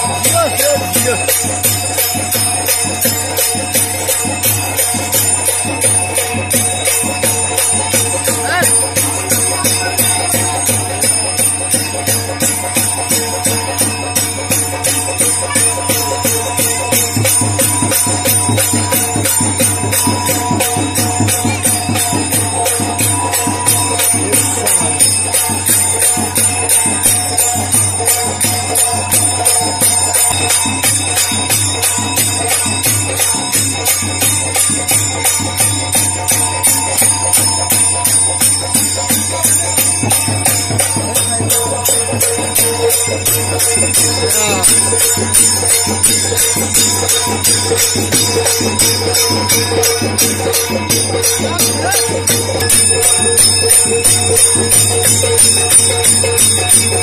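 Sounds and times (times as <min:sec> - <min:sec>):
drums: 0:00.0 - 0:57.0
held tone: 0:00.0 - 0:57.0
jingling bells: 0:00.0 - 0:57.0.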